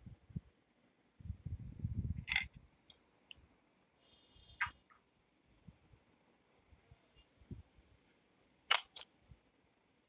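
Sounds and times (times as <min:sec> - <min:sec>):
faint high hiss: 0:01.8 - 0:09.8
sharp clicks: 0:08.7 - 0:09.1.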